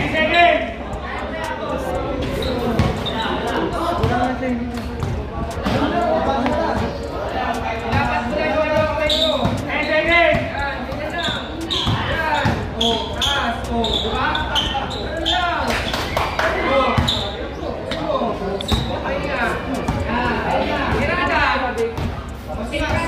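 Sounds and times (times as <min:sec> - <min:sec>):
spectators talking and calling: 0:00.0 - 0:23.0.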